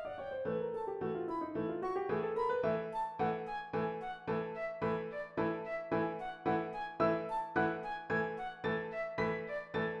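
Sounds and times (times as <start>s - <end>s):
flute melody: 0.0s - 10.0s
piano chords: 0.0s - 10.0s.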